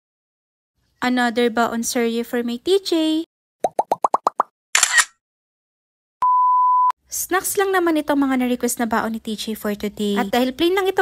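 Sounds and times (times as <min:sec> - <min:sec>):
bubbly plops rising in pitch: 0:03.6 - 0:04.5.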